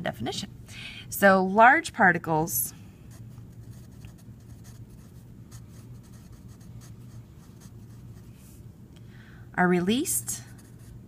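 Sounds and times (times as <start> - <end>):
low steady hum: 0.0 - 11.0
pencil writing on paper: 3.7 - 8.2.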